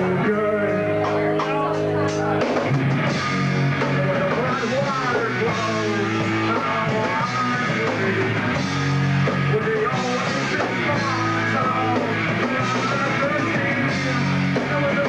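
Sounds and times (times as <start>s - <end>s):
bass guitar: 0.0s - 15.0s
drum kit: 0.0s - 15.0s
electric guitar: 0.0s - 15.0s
man singing: 0.0s - 15.0s.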